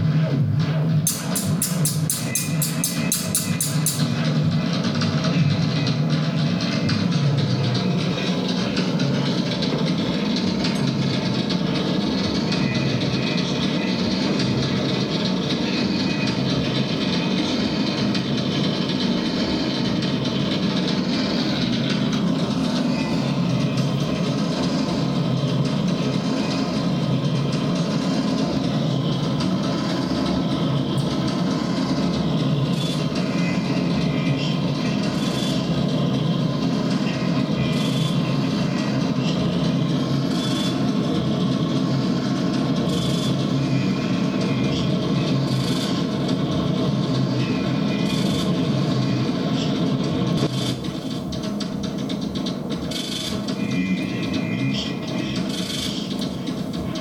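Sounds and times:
harsh electronic feedback drone: 0.0 - 51.3, 52.2 - 57.0.

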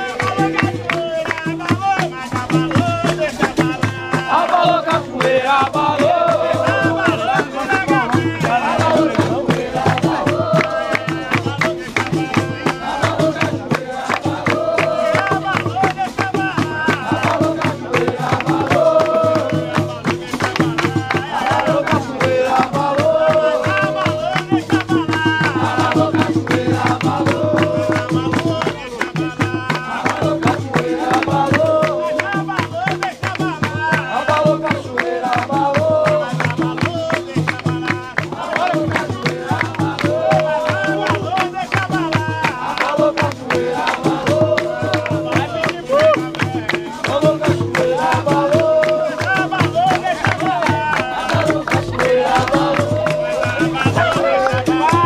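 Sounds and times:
berimbaus and percussion: 0.0 - 55.0
group singing: 0.0 - 55.0
hand clapping: 0.0 - 55.0.

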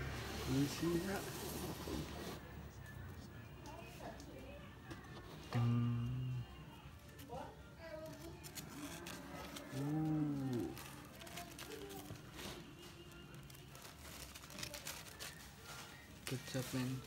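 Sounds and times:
man humming: 5.5 - 6.5
paper rustling: 7.9 - 17.0.

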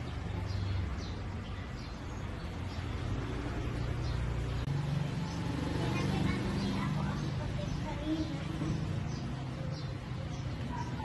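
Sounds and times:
faint voices: 5.6 - 11.0.

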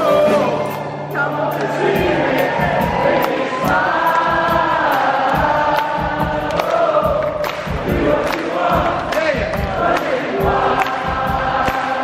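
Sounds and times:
rock band and orchestra playing: 0.0 - 5.6
crowd singing along: 0.0 - 12.0.

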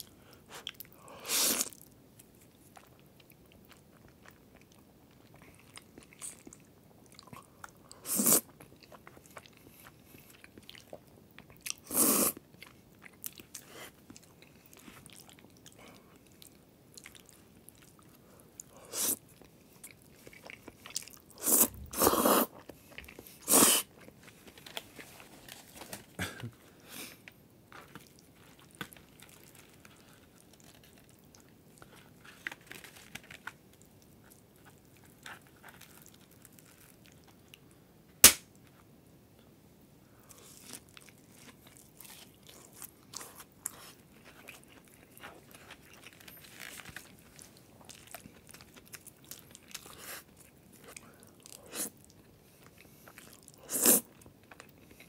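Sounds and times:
noodle slurping: 8.0 - 8.5, 21.4 - 22.5, 23.4 - 23.9.

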